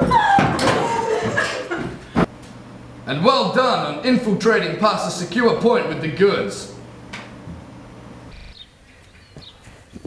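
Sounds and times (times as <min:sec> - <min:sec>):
low indoor hum: 0:00.0 - 0:10.0
small birds chirping: 0:08.3 - 0:10.0.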